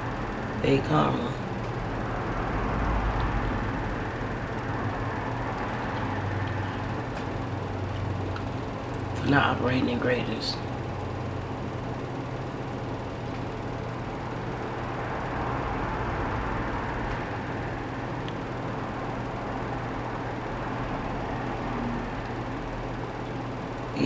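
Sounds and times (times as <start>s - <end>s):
low hum: 0.0s - 24.0s.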